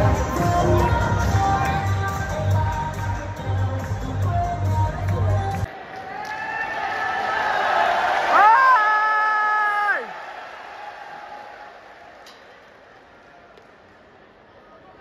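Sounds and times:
crowd cheering and shouting: 5.5 - 12.5.

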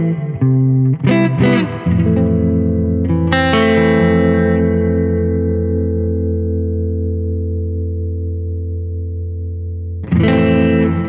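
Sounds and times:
electric guitar notes and chords: 0.0 - 11.0.

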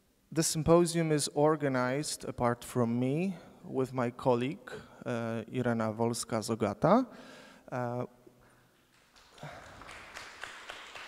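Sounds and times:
light scattered applause: 8.8 - 11.0.

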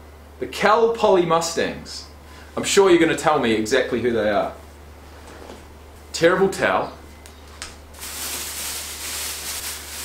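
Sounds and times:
plastic bag rustling and crinkling: 8.0 - 10.0.

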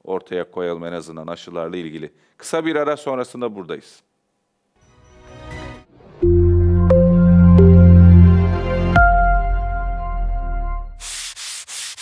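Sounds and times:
short hissing swishes: 11.0 - 12.0.

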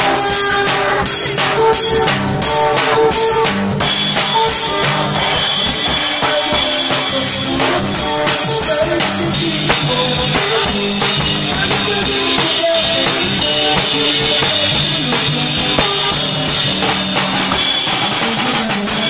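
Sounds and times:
drum kit playing a steady beat: 0.0 - 19.0
song from a loudspeaker: 0.0 - 19.0.

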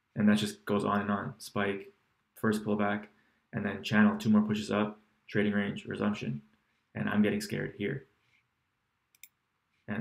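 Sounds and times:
computer mouse clicks: 9.1 - 9.4.

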